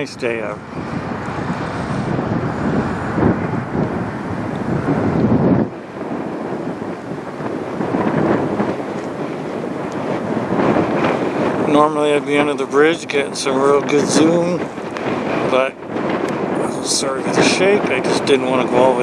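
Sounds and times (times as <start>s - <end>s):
wind gusts on microphone: 0.0s - 19.0s.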